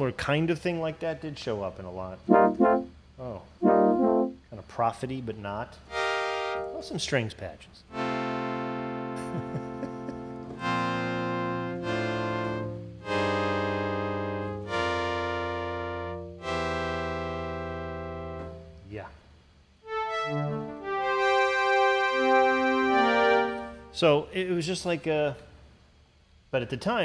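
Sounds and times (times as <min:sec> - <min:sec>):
synthesizer string chords: 0:02.3 - 0:02.9, 0:03.6 - 0:04.4, 0:05.9 - 0:07.0, 0:07.9 - 0:18.8, 0:19.9 - 0:24.0.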